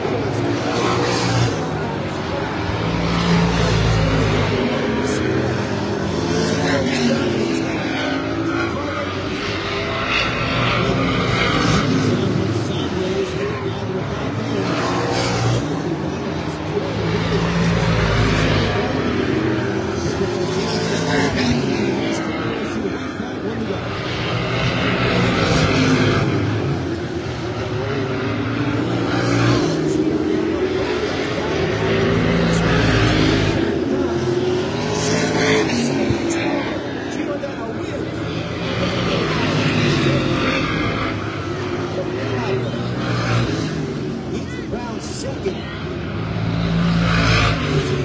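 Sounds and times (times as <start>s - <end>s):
stock cars racing past: 0.0s - 48.0s.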